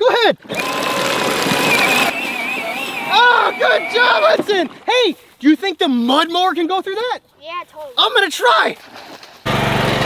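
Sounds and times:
wheels splashing in water: 0.4 - 4.9, 8.6 - 10.0
electric motor whining: 0.5 - 4.1.

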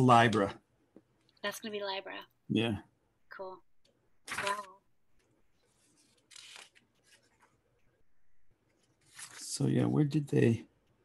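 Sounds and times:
faint soft handling noises: 5.2 - 9.7.

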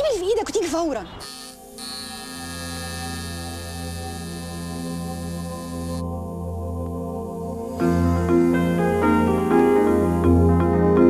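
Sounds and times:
low electric buzz: 1.2 - 10.4
ambient music drone: 1.2 - 11.0.

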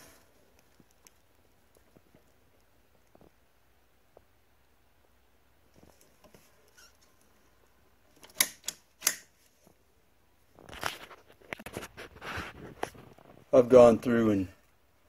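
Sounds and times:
circuit breaker switch clicks: 8.2 - 9.3.

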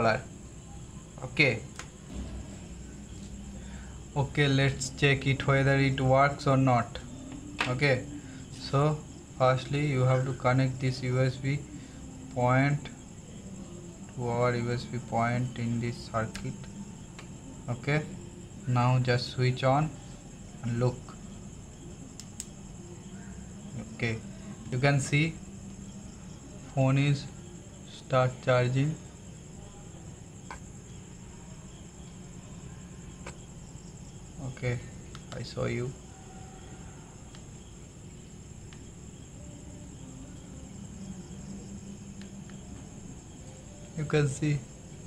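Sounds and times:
thin high whine: 0.0 - 19.9
faint hum: 0.0 - 45.0
low hum: 1.9 - 9.6
steady high-pitched tone: 2.0 - 10.1.

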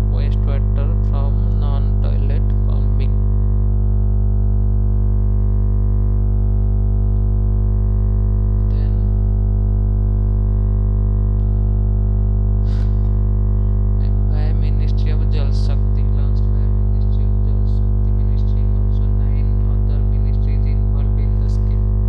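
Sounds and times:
electrical hum-buzz: 0.0 - 22.0.

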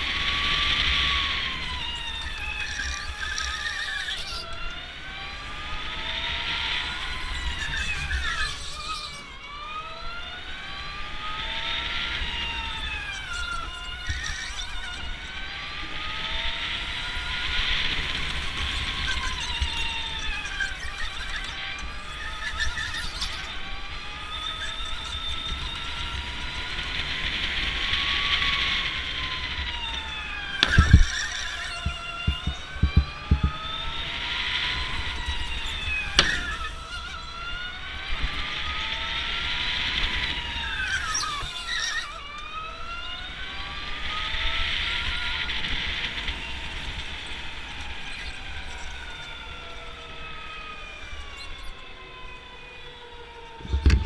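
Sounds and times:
electric motor whining: 0.0 - 54.0
sharp thumps: 30.6 - 33.8, 35.2 - 36.9, 53.6 - 54.0.

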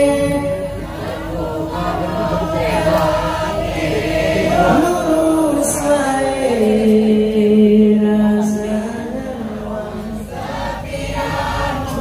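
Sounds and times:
men singing a duet: 0.0 - 12.0.

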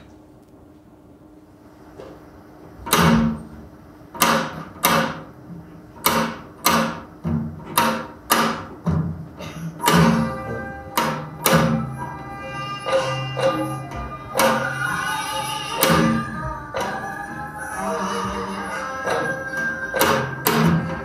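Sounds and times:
drum strokes: 6.0 - 21.0
sustained melodic instruments: 9.8 - 21.0.

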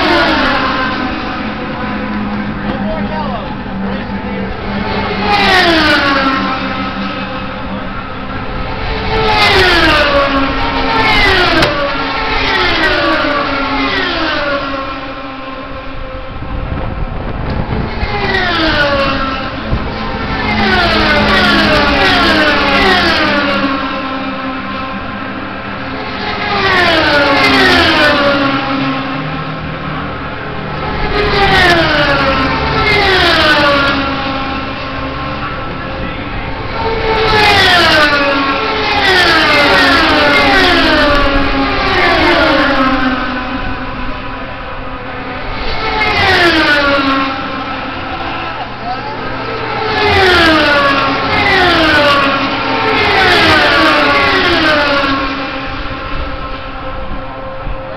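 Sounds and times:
race cars screaming past: 0.0 - 57.9.

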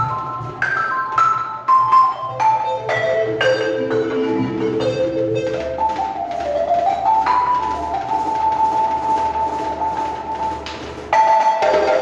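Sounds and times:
balafon wooden-bar notes: 0.0 - 12.0
djembe hand drumming: 0.0 - 12.0.

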